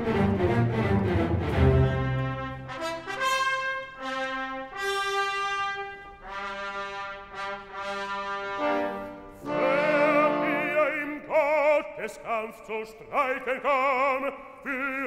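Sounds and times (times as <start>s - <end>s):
trumpet fanfare: 1.7s - 10.9s.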